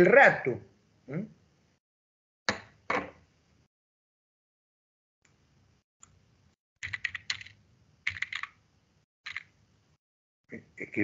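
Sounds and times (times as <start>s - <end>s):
typing on computer keyboard: 6.8s - 8.6s, 9.3s - 9.5s.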